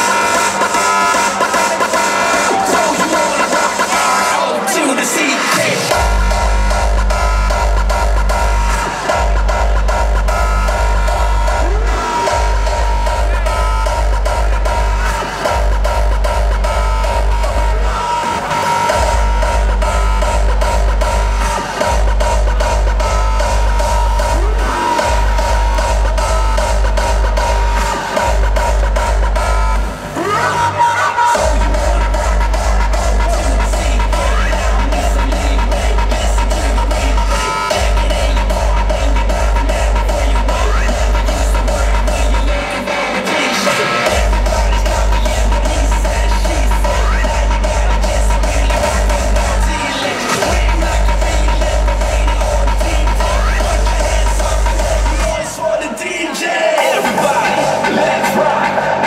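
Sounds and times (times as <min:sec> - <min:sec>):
hardstyle dance music: 0:00.0 - 0:59.0
synth riffs: 0:00.0 - 0:59.0
heavy kick drum: 0:05.9 - 0:18.0, 0:18.9 - 0:29.9, 0:31.4 - 0:42.6, 0:44.1 - 0:55.4.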